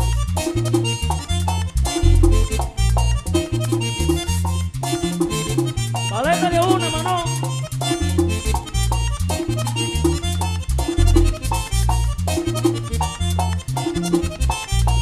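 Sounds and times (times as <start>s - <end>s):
accordion riffs: 0.0s - 15.0s
driving bass line: 0.0s - 15.0s
hand drum beat: 4.9s - 11.8s
metal scraper rhythm: 7.4s - 15.0s.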